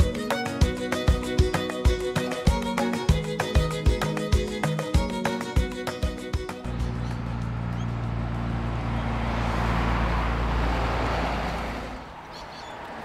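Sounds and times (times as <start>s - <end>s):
vehicle engine hum passing: 6.5s - 13.0s.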